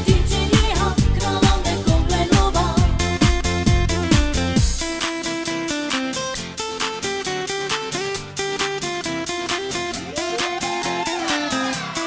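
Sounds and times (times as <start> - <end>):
person singing: 0.0 - 3.1, 10.0 - 12.0
synths and bass: 0.0 - 5.1.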